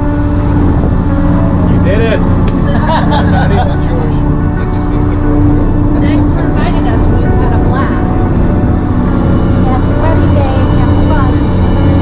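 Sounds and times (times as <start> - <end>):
bus engine and road drone: 0.0 - 12.0.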